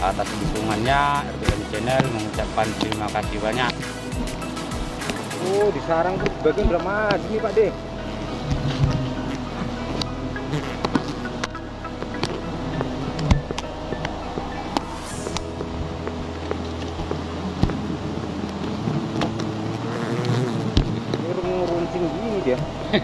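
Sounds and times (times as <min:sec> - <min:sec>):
bees buzzing: 0:00.0 - 0:23.0.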